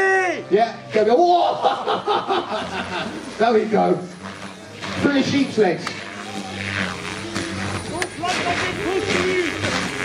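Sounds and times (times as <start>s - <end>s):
rc helicopter rotors humming: 0.0s - 10.0s
voices: 0.0s - 10.0s.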